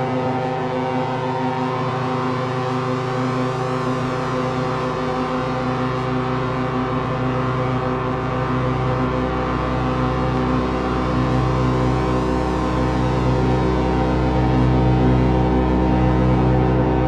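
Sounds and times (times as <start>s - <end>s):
low bass drone: 0.0s - 17.0s.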